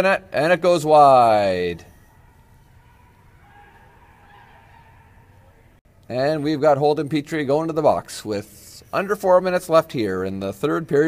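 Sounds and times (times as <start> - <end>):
distant arena ambience: 0.0 - 11.0.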